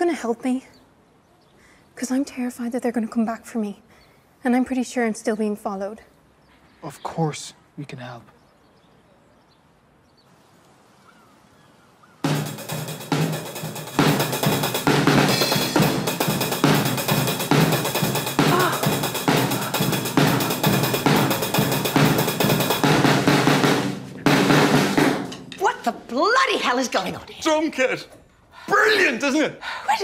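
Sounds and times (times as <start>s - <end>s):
drum kit playing fast beat: 12.2s - 26.1s.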